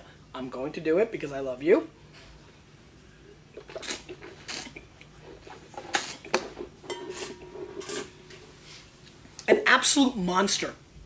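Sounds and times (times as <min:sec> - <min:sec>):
person slurping wine: 0:03.5 - 0:06.4.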